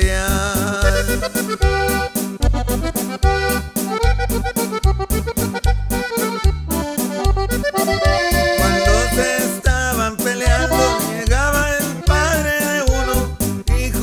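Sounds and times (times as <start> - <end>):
accordion melody: 0.0 - 14.0
bass and drum beat: 0.0 - 14.0.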